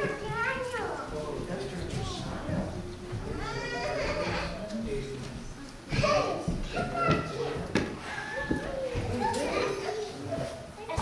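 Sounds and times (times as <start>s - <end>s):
children's voices: 0.0s - 4.6s, 5.9s - 11.0s
people talking indistinctly: 0.0s - 11.0s.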